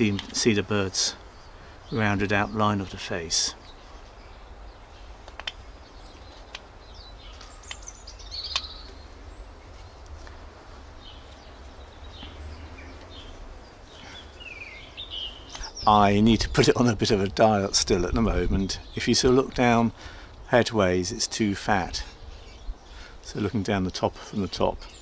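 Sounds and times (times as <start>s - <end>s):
birds chirping: 0.0s - 25.0s.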